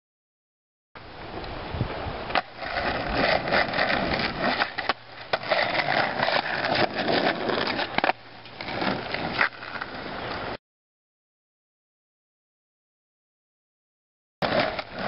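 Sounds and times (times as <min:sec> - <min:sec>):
skateboard wheels rolling on asphalt: 0:01.2 - 0:10.6, 0:14.4 - 0:15.0
skateboard clacks: 0:02.3 - 0:10.4, 0:14.4 - 0:15.0.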